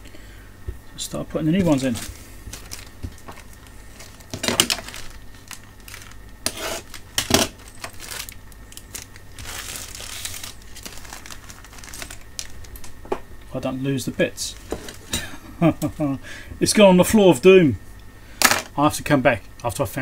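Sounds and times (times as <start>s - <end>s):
plastic packets crinkling: 1.5s - 13.0s.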